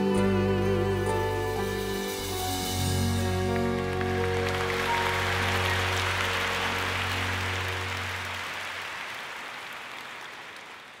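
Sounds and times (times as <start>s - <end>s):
audience applause: 3.3s - 11.0s.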